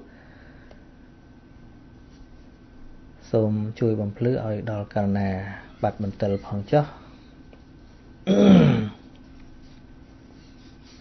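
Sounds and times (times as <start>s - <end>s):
man clearing throat: 8.2s - 9.1s.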